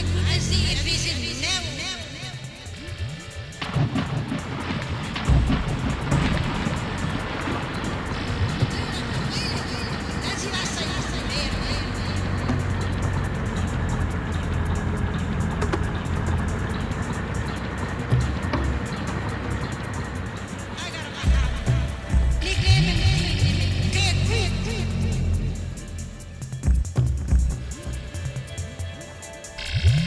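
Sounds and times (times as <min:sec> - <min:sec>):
ambient electronic music: 0:00.0 - 0:30.0.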